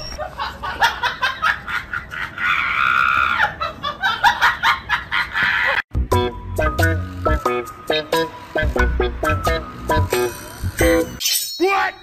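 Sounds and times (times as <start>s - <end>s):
person laughing hard: 0.2s - 5.8s.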